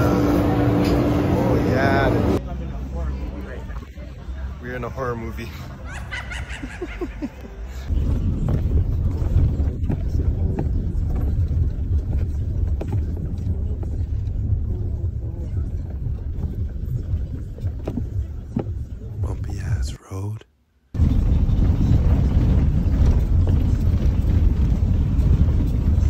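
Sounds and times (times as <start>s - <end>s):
car cabin rumble: 7.9s - 19.8s.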